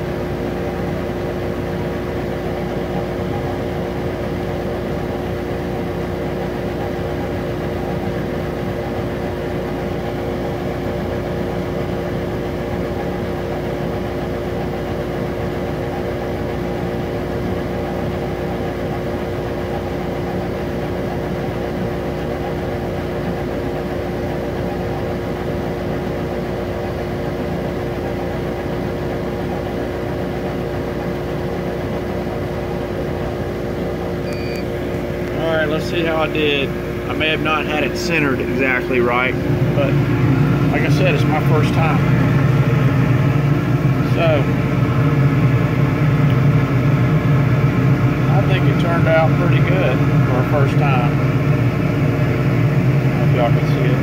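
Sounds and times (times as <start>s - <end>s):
laser engraver humming: 0.0s - 54.0s.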